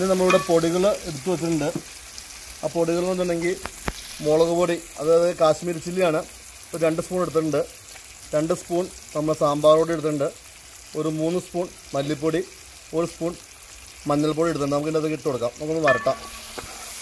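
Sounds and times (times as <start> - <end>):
man talking: 0.0 - 1.8, 14.1 - 16.3
vegetables sizzling in oil: 0.0 - 17.0.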